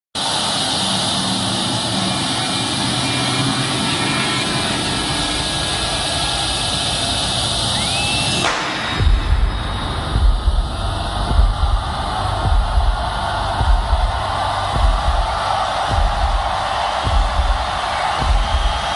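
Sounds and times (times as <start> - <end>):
stadium crowd noise: 0.2 - 18.9
deep uneven low booms: 9.0 - 18.9.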